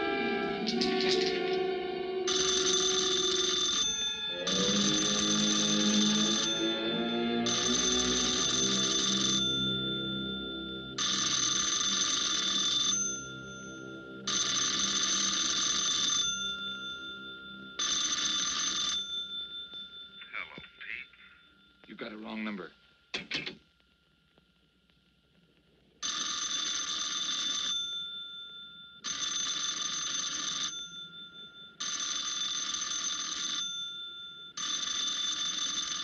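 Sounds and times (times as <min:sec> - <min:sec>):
film score music: 0:00.0 - 0:18.1
telephone bell ringing: 0:02.3 - 0:22.2, 0:26.0 - 0:36.0.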